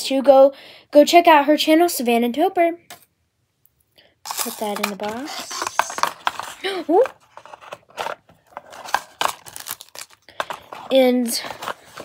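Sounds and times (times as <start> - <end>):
packaging handled by hand: 4.3 - 12.0.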